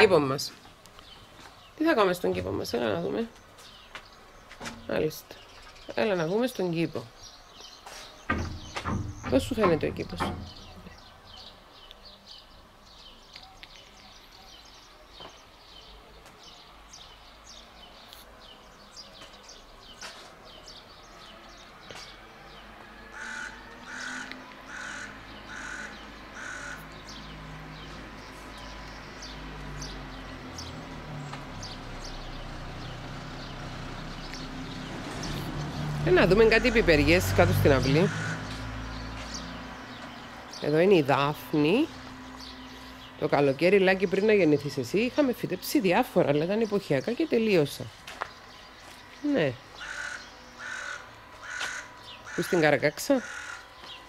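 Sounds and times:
crow cawing: 23.1s - 27.0s, 38.0s - 38.6s, 49.7s - 53.9s
magpie harsh calls: 23.1s - 27.0s, 37.8s - 38.5s, 49.7s - 53.7s.

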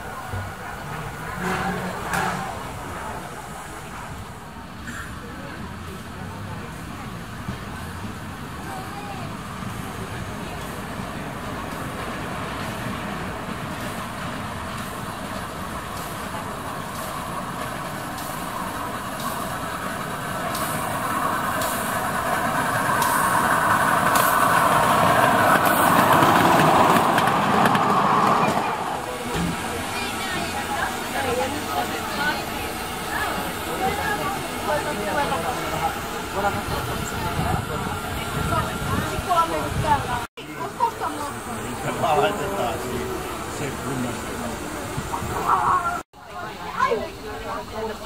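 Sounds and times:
sharp clicks of train: 0.0s - 8.8s, 9.4s - 40.2s
miniature train running: 5.0s - 48.0s.

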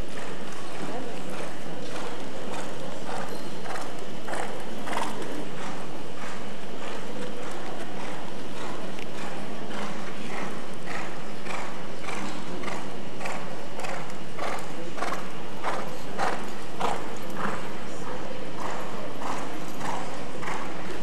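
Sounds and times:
horse hoofbeats on sand: 0.0s - 17.6s
steady background noise: 0.0s - 21.0s.

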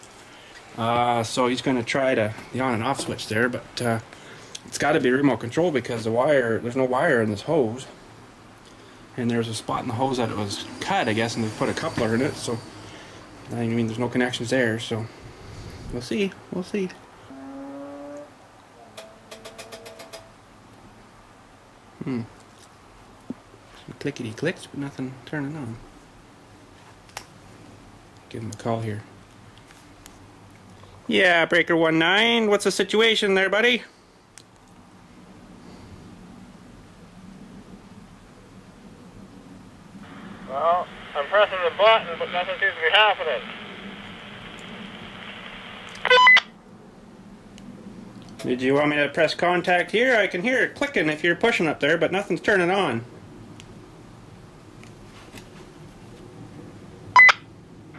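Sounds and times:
radio static hiss: 9.1s - 16.9s, 40.0s - 46.5s
faint tones: 17.2s - 20.4s
multi-tone radio beep: 46.0s - 46.5s, 57.2s - 57.4s.

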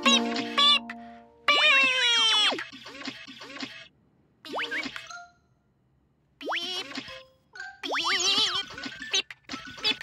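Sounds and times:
children's background music: 0.0s - 1.5s.

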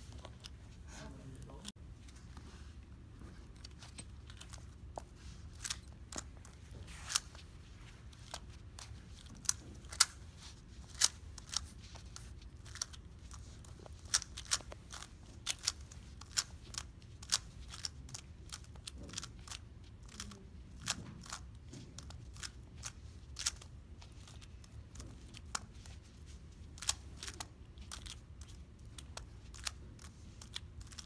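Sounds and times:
room hum: 0.0s - 31.0s.

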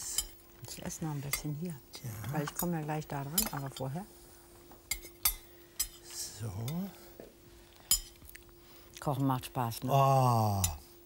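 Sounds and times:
utensils clinking on plates: 4.9s - 6.9s.

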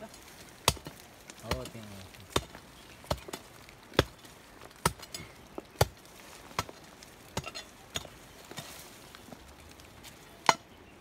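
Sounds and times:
woody brush being chopped: 0.6s - 5.0s.

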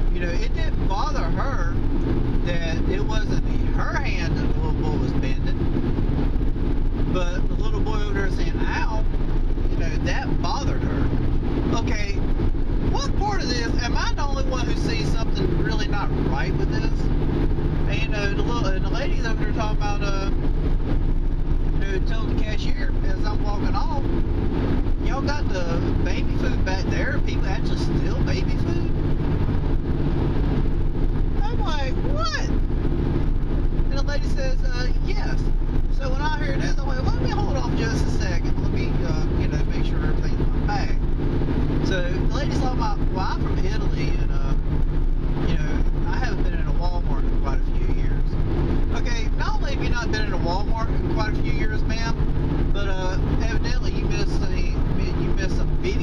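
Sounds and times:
car engine and road drone: 0.0s - 56.0s
indistinct voices: 31.3s - 32.6s.

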